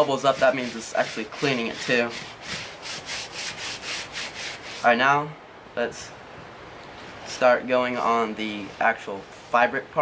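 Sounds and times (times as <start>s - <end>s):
brush scrubbing wet sneaker: 0.0s - 5.0s.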